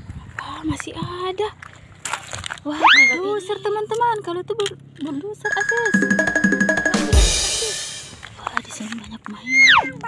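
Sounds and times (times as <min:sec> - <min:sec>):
steady high tone: 0:05.4 - 0:08.2
drum roll: 0:05.5 - 0:08.3
bass drum hit: 0:06.9 - 0:08.2
crash cymbal: 0:07.1 - 0:08.2.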